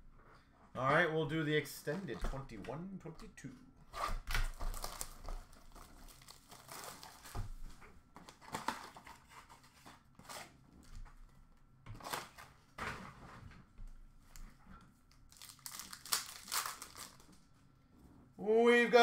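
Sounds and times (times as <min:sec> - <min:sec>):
wrappers crinkling and tearing: 0:04.4 - 0:07.4, 0:15.3 - 0:17.4.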